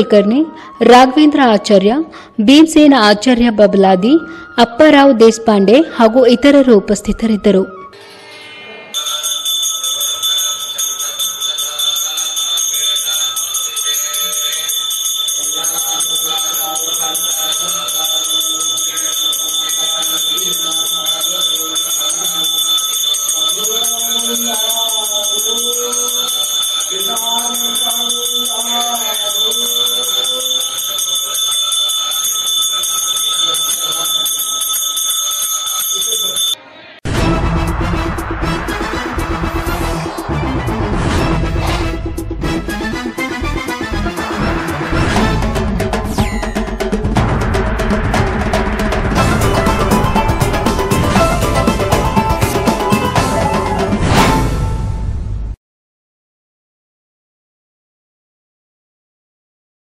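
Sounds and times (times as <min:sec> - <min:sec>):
hand bell ringing rapidly: 0:09.0 - 0:36.6, 0:45.4 - 0:53.8.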